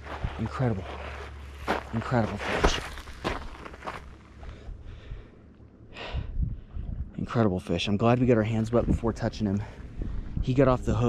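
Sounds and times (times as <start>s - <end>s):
footsteps crunching on gravel: 0.0s - 4.6s.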